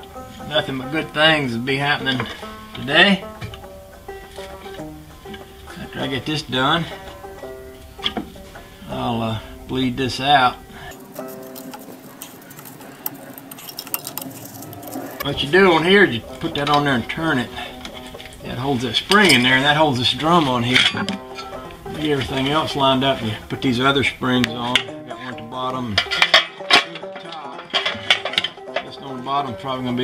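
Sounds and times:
metal clicks and clinks: 0:10.9 - 0:15.3.

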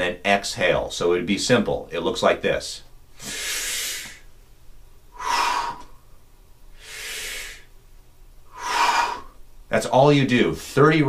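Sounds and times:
man breathing deeply: 0:03.1 - 0:04.3, 0:05.1 - 0:07.8, 0:08.4 - 0:09.4.

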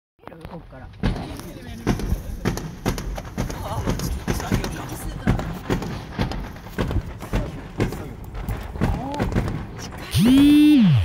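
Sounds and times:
fireworks bangs and pops: 0:00.2 - 0:10.9.

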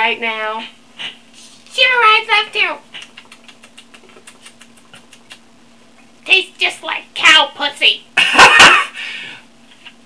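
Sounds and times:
faint steady hum: 0:00.0 - 0:10.0
wet mouth clicks and lip smacks: 0:02.9 - 0:05.5.

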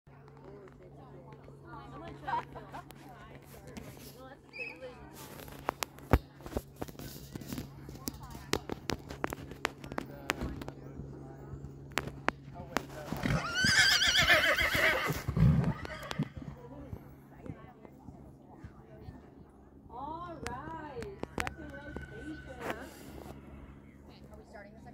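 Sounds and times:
horse whinnying: 0:13.2 - 0:16.4.

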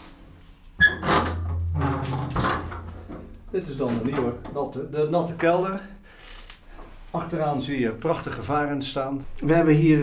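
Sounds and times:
heavy door swinging open: 0:00.8 - 0:03.0
metal hatch clanking: 0:00.8 - 0:03.3.

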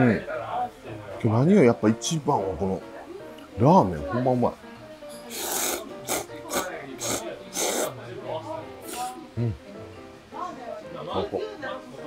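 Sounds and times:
man slurping noodles: 0:05.3 - 0:07.9, 0:08.8 - 0:09.1.

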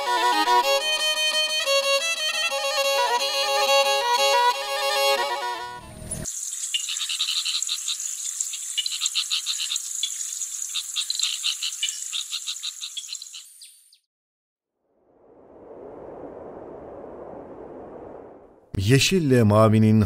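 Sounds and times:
violin music: 0:00.0 - 0:06.2.

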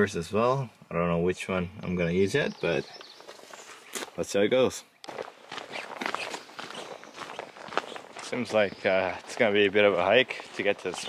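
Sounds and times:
footsteps on dirt trail: 0:02.6 - 0:04.2, 0:04.9 - 0:11.0.

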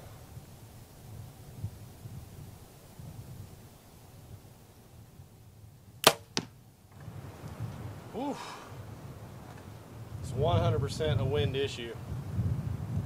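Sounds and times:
arrow striking target: 0:06.0 - 0:06.6
bow string crack: 0:06.0 - 0:07.6.

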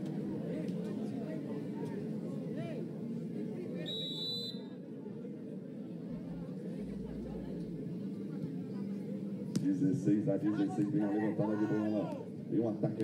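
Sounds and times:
crowd babble: 0:00.0 - 0:13.0
referee's whistle: 0:03.8 - 0:04.8.

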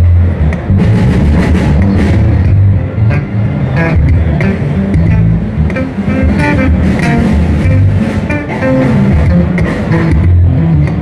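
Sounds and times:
electric basses jamming: 0:00.0 - 0:11.0.

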